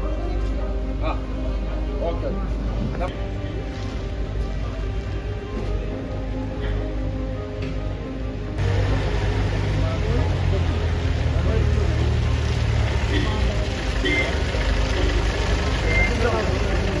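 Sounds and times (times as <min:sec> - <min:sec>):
vehicle engines rumbling: 0:00.0 - 0:17.0
jeep pulling through mud: 0:08.6 - 0:17.0
crowd talking: 0:08.9 - 0:17.0.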